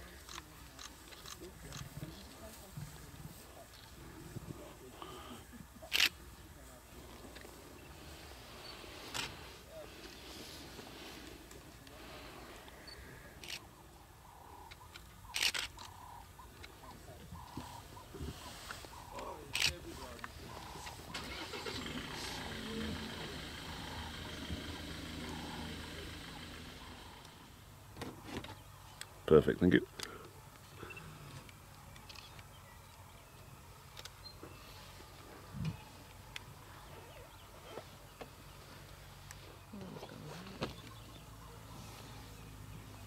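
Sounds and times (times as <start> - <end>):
vehicle engine running: 20.0 - 29.0, 33.5 - 43.0.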